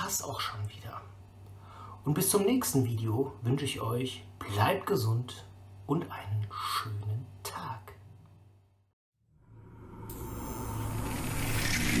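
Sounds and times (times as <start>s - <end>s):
low hum: 8.0s - 12.0s.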